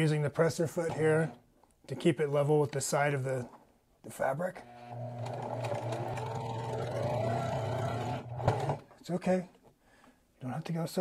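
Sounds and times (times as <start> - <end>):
sewing machine running: 0.8 - 1.4, 4.6 - 8.9.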